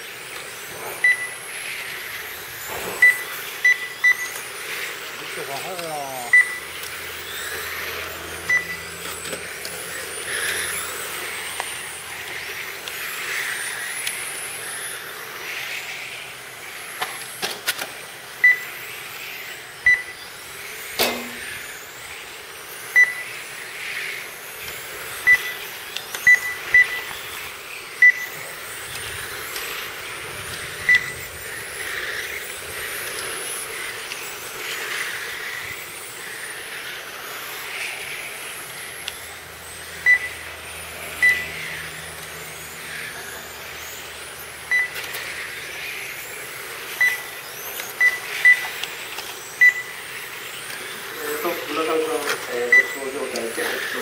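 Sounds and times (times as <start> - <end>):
electric motor whines: 0.0 - 54.0
short electronic beeps: 1.0 - 1.4, 2.8 - 4.4, 6.2 - 6.7, 8.4 - 8.9, 18.4 - 18.7, 19.9 - 20.2, 21.0 - 21.5, 22.9 - 23.3, 25.2 - 25.6, 26.2 - 27.1, 28.0 - 28.4, 30.8 - 31.2, 40.0 - 40.4, 41.2 - 41.5, 44.7 - 45.0, 47.0 - 47.3, 48.0 - 48.7, 49.6 - 49.9, 52.7 - 53.1.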